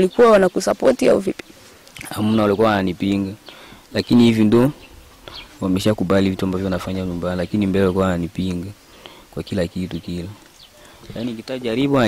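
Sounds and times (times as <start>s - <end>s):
man talking: 2.0s - 4.8s, 5.5s - 10.4s, 11.0s - 12.0s.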